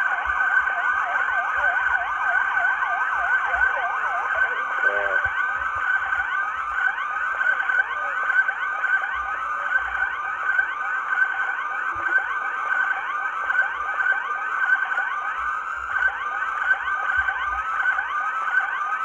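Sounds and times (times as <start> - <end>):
police sirens yelping and wailing: 0.0 - 19.0.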